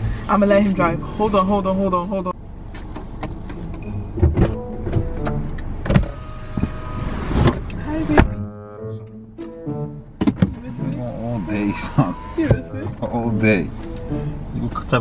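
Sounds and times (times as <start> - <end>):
outside noise: 0.0 - 15.0
car door opening: 2.6 - 14.4
car door shutting with thud: 2.7 - 8.4, 10.2 - 10.7.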